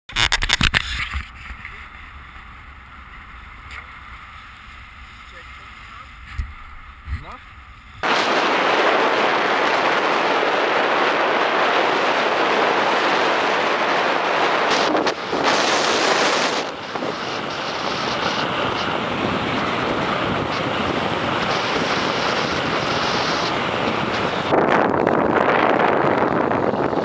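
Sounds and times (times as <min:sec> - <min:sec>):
wind on microphone: 0:05.9 - 0:27.0.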